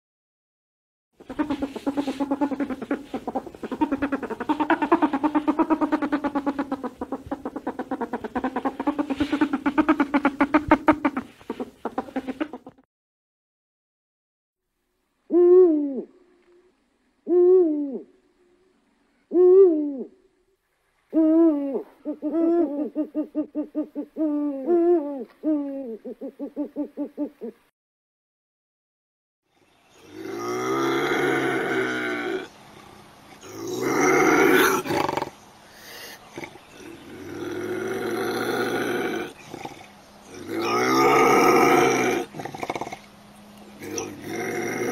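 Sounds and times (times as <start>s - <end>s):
cheetah calling: 1.2s - 12.8s, 30.0s - 44.9s.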